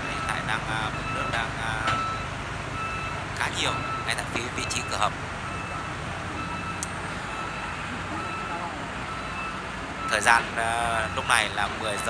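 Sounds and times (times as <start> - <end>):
electronic alarm beeping: 0.0 - 12.0
excavator diesel engine running: 0.0 - 12.0.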